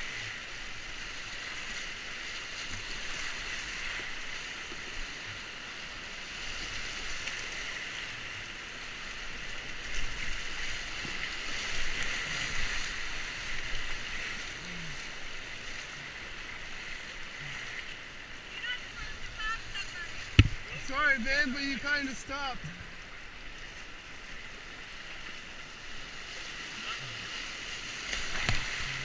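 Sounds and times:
water splashing: 0:00.0 - 0:29.0
whitewater rushing: 0:00.0 - 0:29.0.

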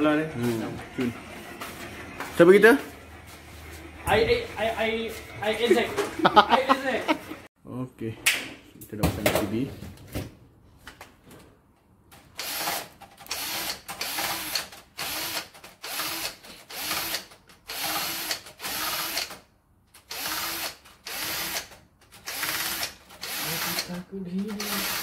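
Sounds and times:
power driver tightening screws: 0:12.4 - 0:19.4, 0:20.0 - 0:25.0.

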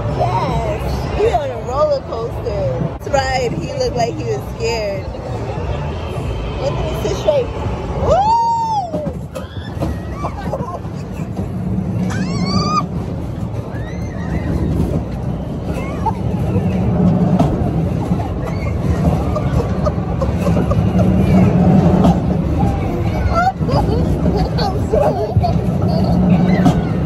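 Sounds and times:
air buffeting microphone: 0:00.0 - 0:27.0
ride low rumble: 0:00.0 - 0:27.0
rider squealing: 0:08.0 - 0:27.0
faint cries: 0:12.0 - 0:13.0.

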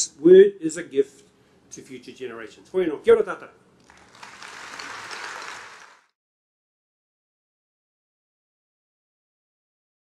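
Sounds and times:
audience applauding: 0:03.8 - 0:06.2.

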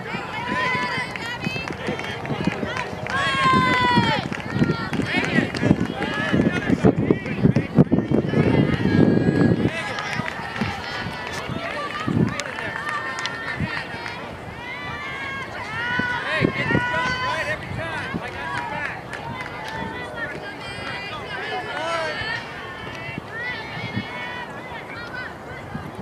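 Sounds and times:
crowd chatter: 0:00.0 - 0:26.0
girls shouting: 0:02.6 - 0:05.3, 0:08.3 - 0:25.9.

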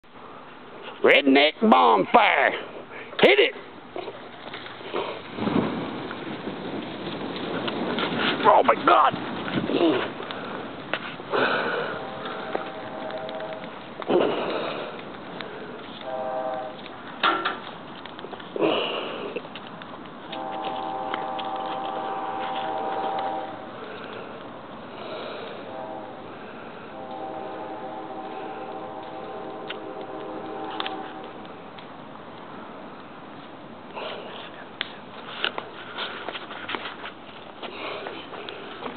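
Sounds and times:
brush fire crackling: 0:00.2 - 0:38.9.

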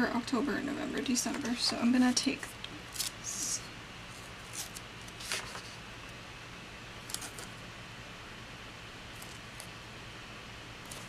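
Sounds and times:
steady low hum: 0:00.0 - 0:11.0
paper rustling: 0:04.1 - 0:05.8, 0:07.1 - 0:07.5.

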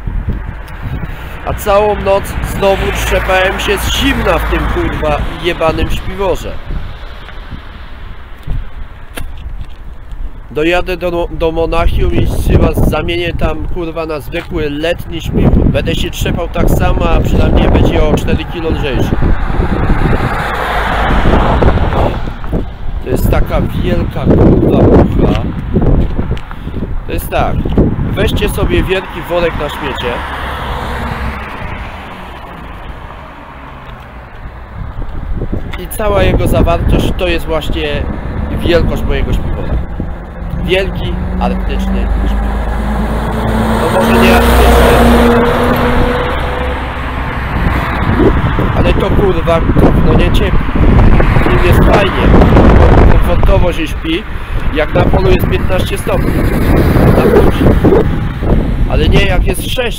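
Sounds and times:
low rumble of road noise: 0:00.0 - 0:59.9
wind buffeting microphone: 0:00.0 - 0:59.9
vehicle engine passing by: 0:00.4 - 0:07.9, 0:17.3 - 0:22.7, 0:27.8 - 0:35.7, 0:36.3 - 0:53.4, 0:54.0 - 0:59.2.

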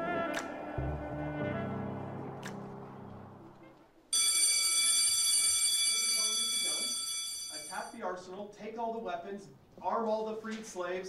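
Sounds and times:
brass music: 0:00.0 - 0:03.8
electronic ringing tone: 0:04.1 - 0:07.9.

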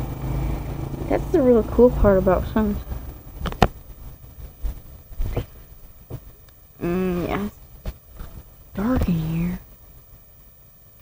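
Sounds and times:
low rumble: 0:00.0 - 0:09.7.

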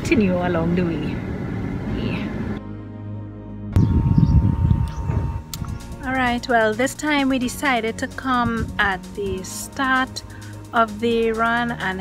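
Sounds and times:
wind buffeting microphone: 0:03.7 - 0:06.0, 0:08.2 - 0:09.0.

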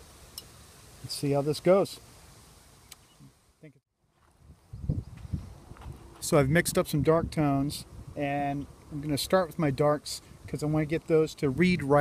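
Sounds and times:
faint outdoor background: 0:00.0 - 0:12.0
wind buffeting microphone: 0:04.4 - 0:08.8.

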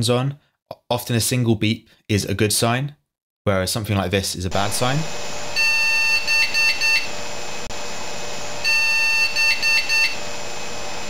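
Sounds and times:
computer speaker beeps: 0:05.6 - 0:07.1, 0:08.6 - 0:10.2.

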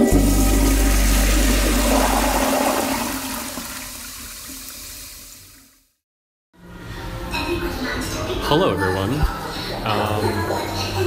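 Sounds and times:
toilet flushing: 0:00.0 - 0:05.8, 0:09.3 - 0:11.0.

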